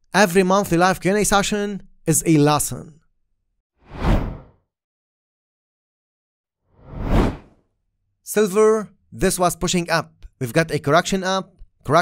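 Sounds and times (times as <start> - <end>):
whoosh: 3.9 - 4.5, 6.8 - 7.5.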